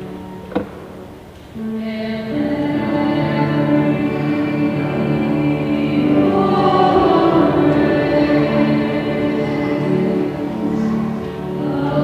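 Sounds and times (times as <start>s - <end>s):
choir singing a hymn: 1.6s - 12.0s.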